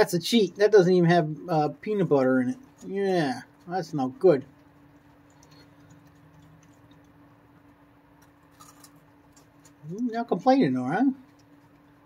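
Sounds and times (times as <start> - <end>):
steady low hum: 0.0 - 12.0
raccoon chewing cracker: 1.8 - 12.0.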